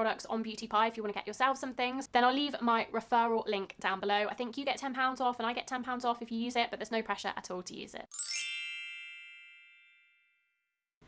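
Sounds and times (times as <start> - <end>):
sparkly chime shimmer: 8.1 - 10.4
ringing bell-like chord: 8.1 - 10.6.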